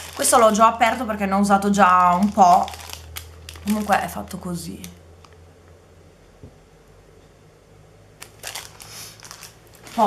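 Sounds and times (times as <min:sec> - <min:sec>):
plastic packaging clicks: 0:00.0 - 0:00.6, 0:01.9 - 0:05.4, 0:08.2 - 0:10.0
plastic packaging crinkling: 0:00.0 - 0:05.3, 0:08.2 - 0:10.0.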